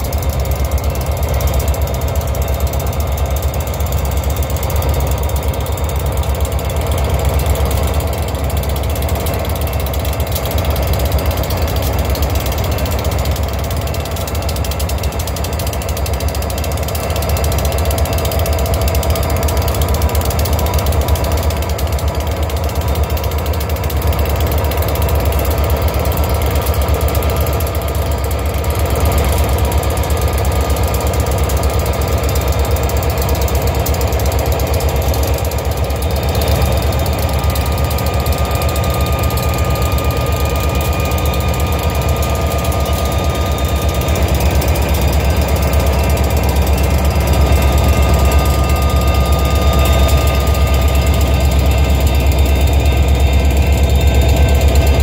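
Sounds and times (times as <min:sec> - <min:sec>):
locomotive engine drone: 0:00.0 - 0:55.0
mechanical rattle of train: 0:00.0 - 0:55.0.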